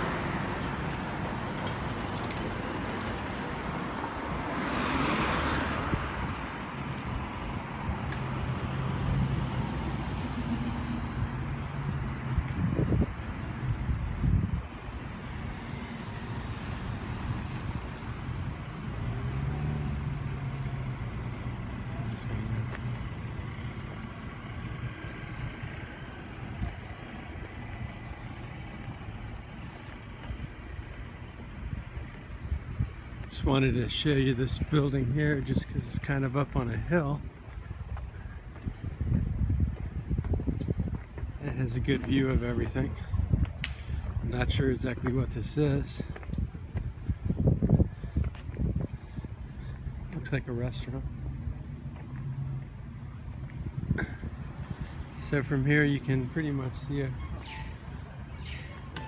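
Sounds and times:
cars driving past: 0:00.0 - 0:59.0.

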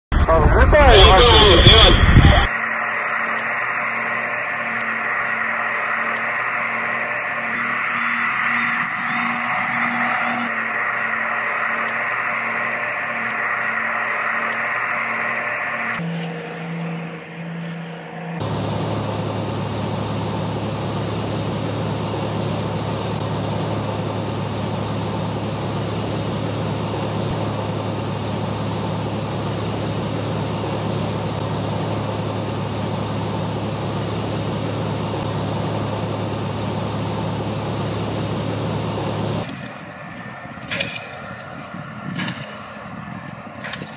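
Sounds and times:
even rushing noise: 0:00.1 - 0:28.2, 0:39.4 - 0:43.9
drone propellers droning: 0:00.2 - 0:43.9
low steady hum: 0:00.2 - 0:43.9.

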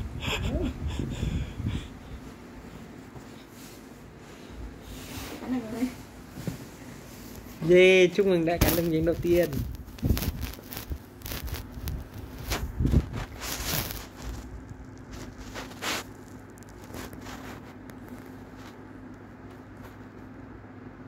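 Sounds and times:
faint steady hum: 0:00.0 - 0:21.0
close rustling and scraping: 0:01.7 - 0:20.4.

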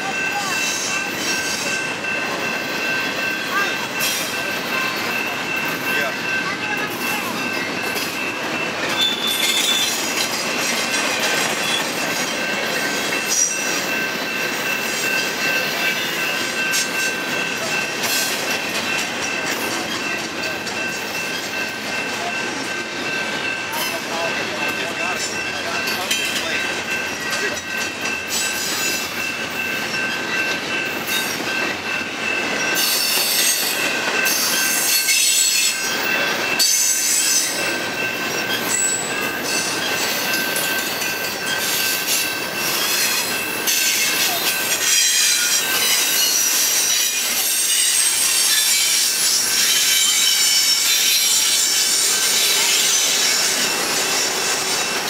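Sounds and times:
freight cars clanking: 0:00.0 - 0:55.0
train wheels rumbling on rails: 0:00.0 - 0:55.0
high-pitched wheel squeal: 0:08.9 - 0:10.0.

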